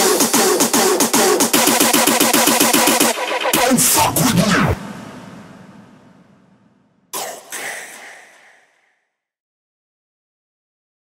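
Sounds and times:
hardstyle music hit with echo: 0.0s - 8.8s.

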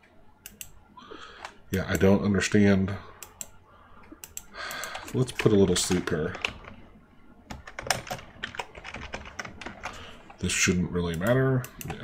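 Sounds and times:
typing on computer keyboard: 7.5s - 10.0s.

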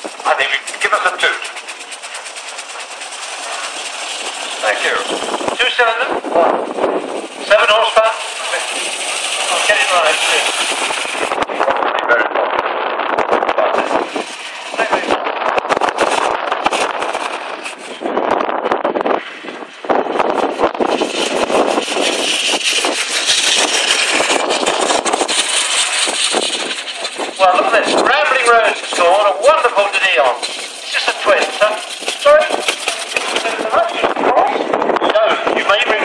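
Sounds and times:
wind buffeting microphone: 0.0s - 36.0s
indistinct voices: 26.8s - 36.0s.

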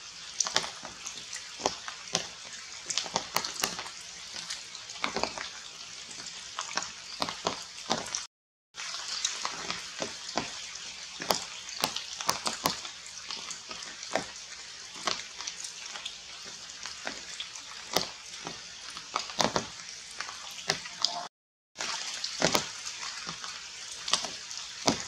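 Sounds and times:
rain falling on leaves: 0.0s - 20.9s, 21.8s - 25.0s
sharp water drips: 0.0s - 25.0s.

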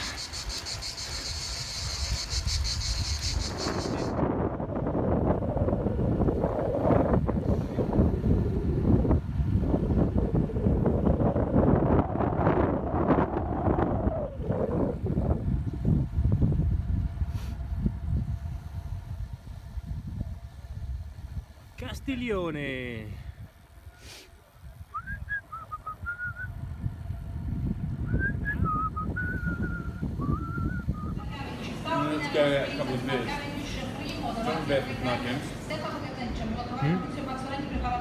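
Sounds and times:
cicadas buzzing: 0.0s - 4.4s, 28.1s - 36.0s
wind buffeting microphone: 0.0s - 23.9s, 24.5s - 34.5s.

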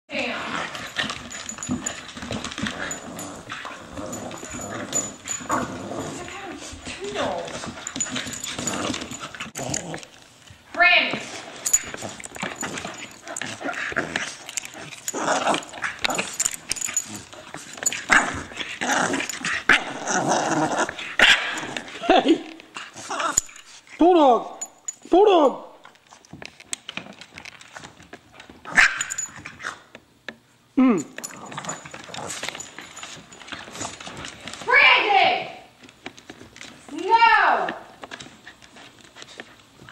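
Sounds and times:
dogs growling: 0.2s - 10.3s, 11.4s - 22.2s, 31.0s - 34.4s.

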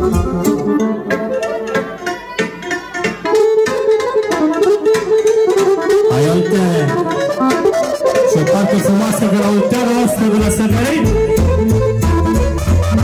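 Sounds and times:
electronic keyboard: 0.0s - 2.1s, 3.3s - 13.0s
saxophone: 0.0s - 13.0s
violin playing fast melody: 0.0s - 13.0s.

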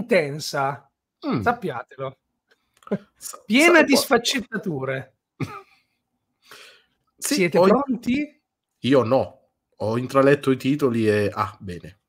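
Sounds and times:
man clearing throat: 5.4s - 5.8s
faint breath: 6.3s - 7.0s.

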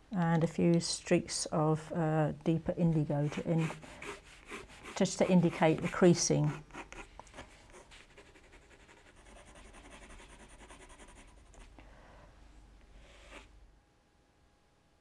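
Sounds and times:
pencil scratching on paper: 3.1s - 11.6s.

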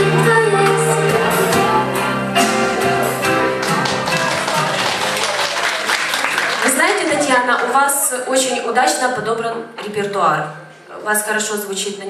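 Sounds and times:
instrumental pop backing track: 0.0s - 5.3s
scattered applause: 3.3s - 8.0s.

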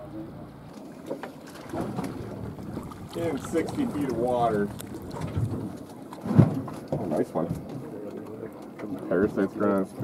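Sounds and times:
water sloshing and splashing: 0.6s - 10.0s.

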